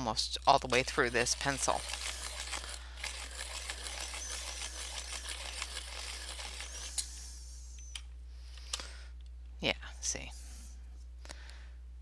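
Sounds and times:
pencil sharpener grinding: 0:00.6 - 0:07.2.

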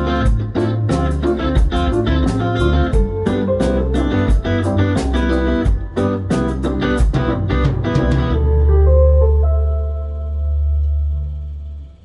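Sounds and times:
low bass note: 0:00.0 - 0:12.0.

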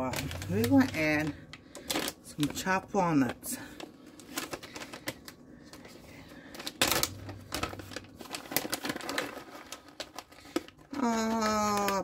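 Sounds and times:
packet of nuts crackling: 0:00.0 - 0:12.0.

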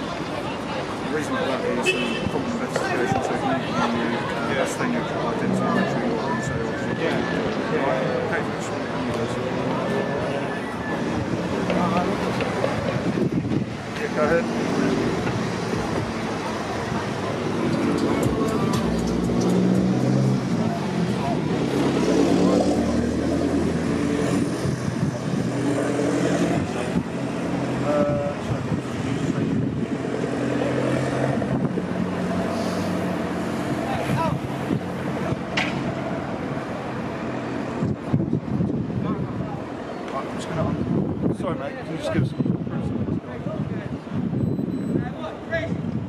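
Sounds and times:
indistinct talking: 0:00.0 - 0:45.9
cars passing on street: 0:00.0 - 0:46.0.

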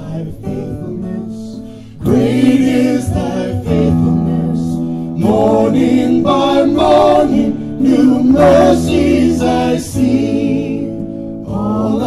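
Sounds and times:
acoustic guitar: 0:00.0 - 0:12.0
voices singing worship song: 0:00.0 - 0:12.0.

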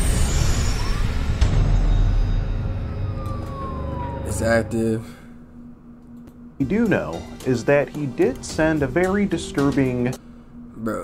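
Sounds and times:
deep steady rumble: 0:00.0 - 0:05.9
siren wailing: 0:00.0 - 0:07.7.

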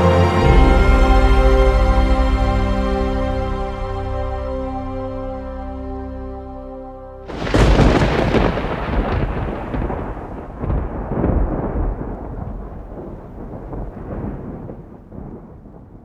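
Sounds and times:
thunder rumbling: 0:07.3 - 0:16.0.

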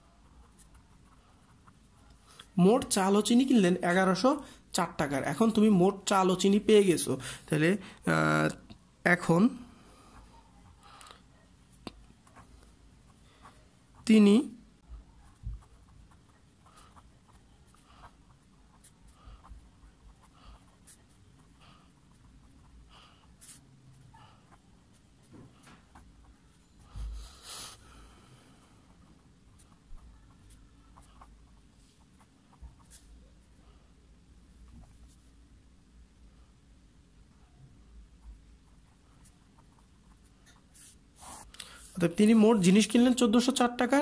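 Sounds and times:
pen scratching on paper: 0:00.0 - 0:03.2, 0:11.9 - 0:14.2, 0:15.0 - 0:27.8, 0:28.9 - 0:33.2, 0:38.2 - 0:42.0.

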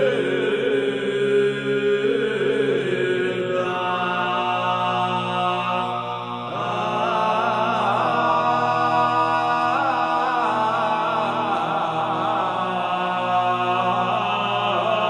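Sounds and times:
male voices singing unaccompanied: 0:00.0 - 0:15.0.

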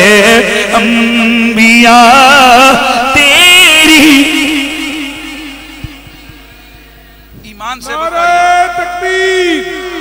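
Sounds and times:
man singing over loudspeaker: 0:00.0 - 0:06.3, 0:07.4 - 0:10.0
faint steady hum: 0:00.0 - 0:10.0.

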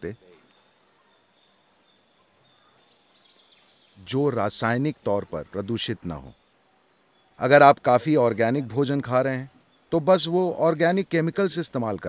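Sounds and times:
faint high bird chirps: 0:00.0 - 0:07.6
faint outdoor background hiss: 0:00.0 - 0:12.0.

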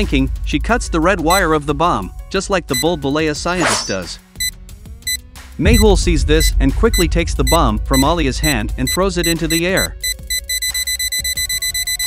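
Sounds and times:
rapid high beeps: 0:04.4 - 0:08.2, 0:08.8 - 0:12.0.

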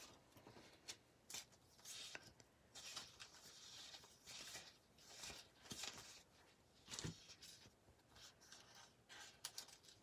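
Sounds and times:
paper scratching and rustling: 0:01.3 - 0:10.0.

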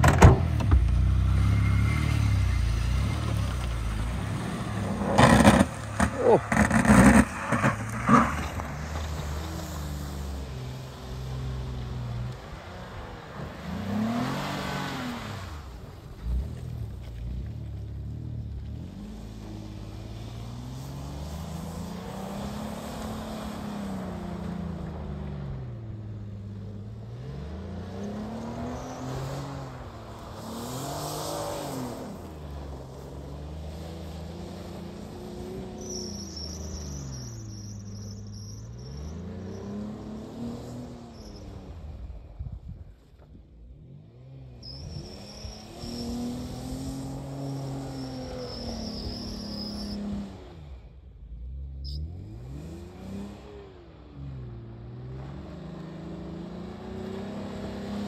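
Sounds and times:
suv engine revving: 0:00.5 - 0:11.9.

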